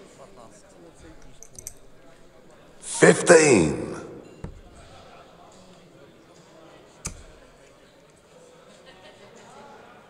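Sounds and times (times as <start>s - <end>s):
murmur of voices: 0.0s - 10.0s
referee calling out: 2.8s - 4.4s
darts clicking together: 7.0s - 7.4s.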